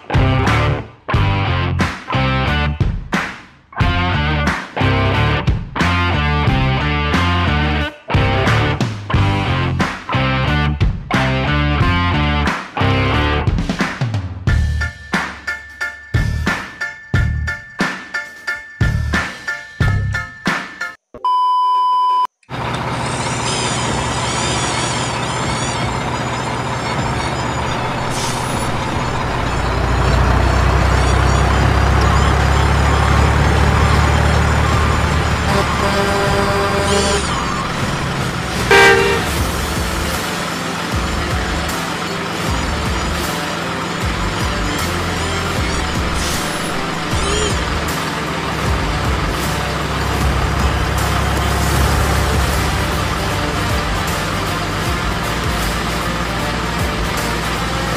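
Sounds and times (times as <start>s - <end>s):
truck engine rumble: 0.0s - 2.8s, 3.8s - 13.8s, 22.5s - 57.9s
background music: 0.0s - 21.0s, 25.8s - 57.9s
high test-tone beep: 21.2s - 22.3s
horn toots: 34.6s - 40.5s.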